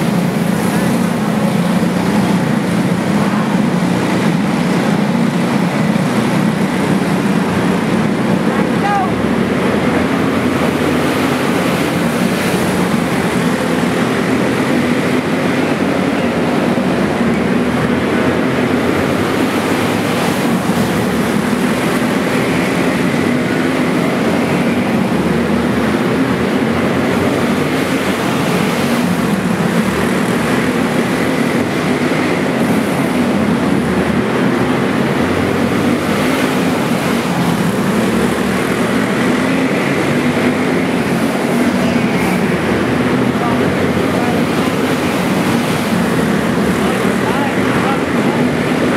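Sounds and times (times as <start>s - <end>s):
racing kart engines droning: 0.0s - 48.9s.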